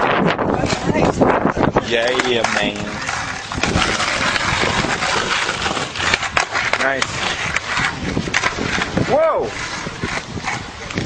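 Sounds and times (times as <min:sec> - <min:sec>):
skateboard wheels rolling on asphalt: 0:00.0 - 0:11.0.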